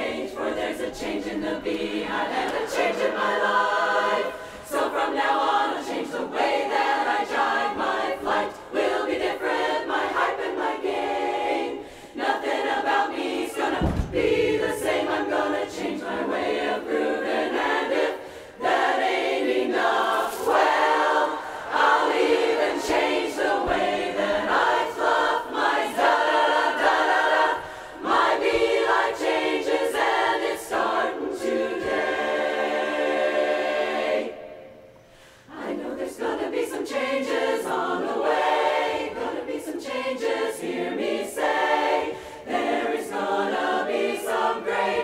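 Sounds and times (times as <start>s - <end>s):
women's chorus singing a cappella: 0.0s - 45.0s.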